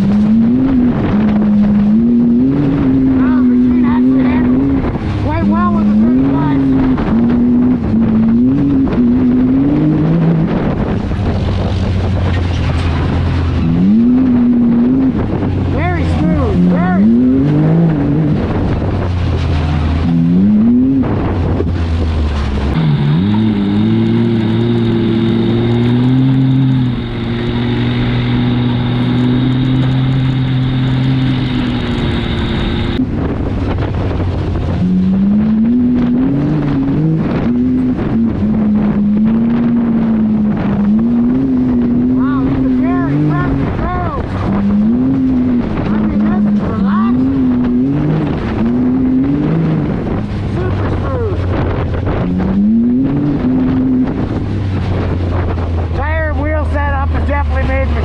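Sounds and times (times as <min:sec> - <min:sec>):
utility vehicle engine revving: 0:00.0 - 0:58.0.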